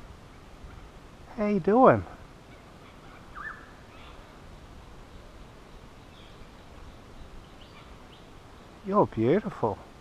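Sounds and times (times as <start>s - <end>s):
faint bird chirp: 2.4s - 9.2s.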